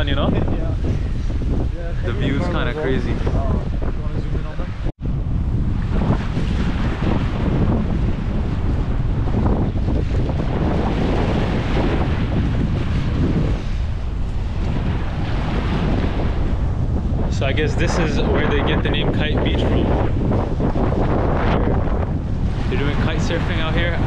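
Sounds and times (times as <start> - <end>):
waves washing in: 0.0 - 24.0
wind buffeting microphone: 0.0 - 24.0.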